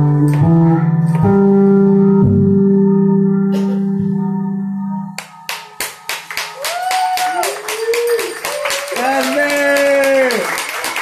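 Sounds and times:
audience clapping: 5.2s - 11.0s
audience cheering whoops: 6.5s - 10.6s.

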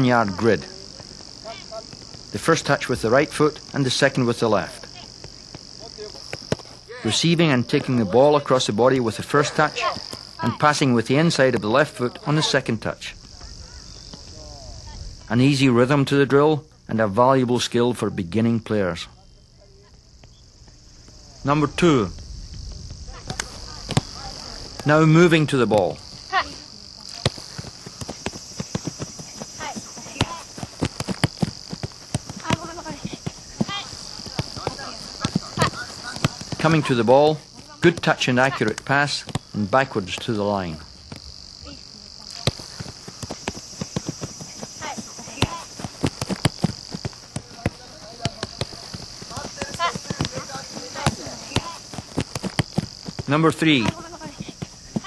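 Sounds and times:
insects chirring: 0.0s - 55.0s
steady high-pitched hum: 0.0s - 55.0s
soccer ball kicks: 4.9s - 6.8s, 22.6s - 24.9s, 27.1s - 40.4s, 42.3s - 55.0s.

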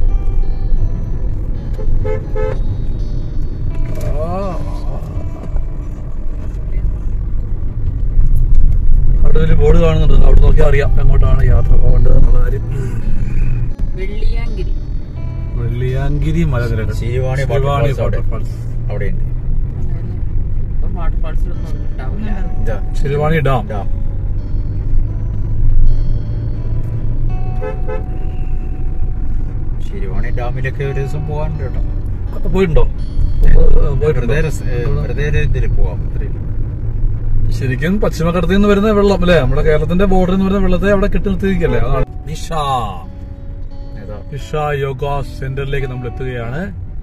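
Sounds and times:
car engine and tyres rumbling: 0.0s - 47.0s
vehicle horn: 1.6s - 2.9s, 27.3s - 29.0s.

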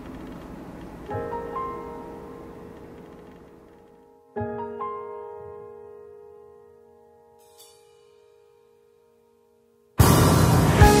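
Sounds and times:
held piano chord: 1.0s - 11.0s.

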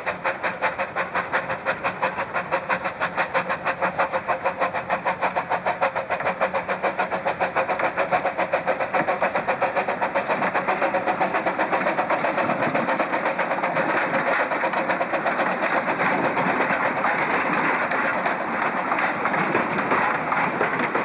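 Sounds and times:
steam locomotive chuffing: 0.0s - 21.0s.

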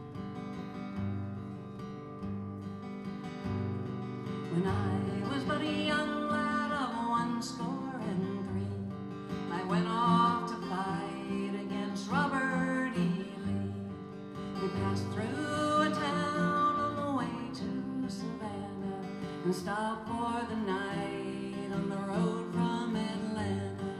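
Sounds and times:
strummed acoustic guitar: 0.0s - 23.9s
woman singing: 4.2s - 23.9s.

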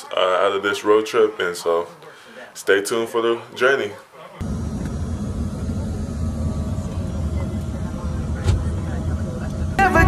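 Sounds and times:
vehicle cabin rumble: 4.4s - 9.9s.

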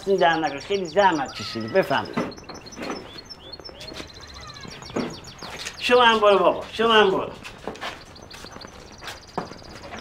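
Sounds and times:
faint voices: 0.0s - 7.6s
small birds chirping: 0.0s - 10.0s.

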